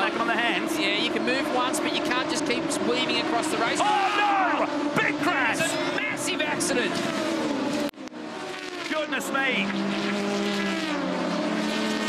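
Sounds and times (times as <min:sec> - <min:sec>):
racing car engines running flat out: 0:00.0 - 0:12.0.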